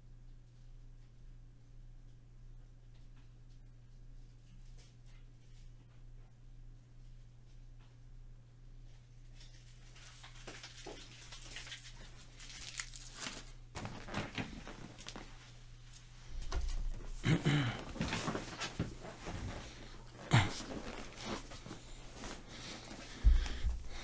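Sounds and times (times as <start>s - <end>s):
faint rustling: 9.3s - 24.0s.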